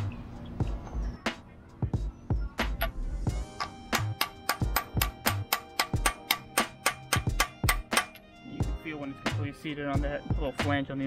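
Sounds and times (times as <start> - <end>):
background music: 0.0 - 11.0
hammer tapping metal: 2.7 - 8.3.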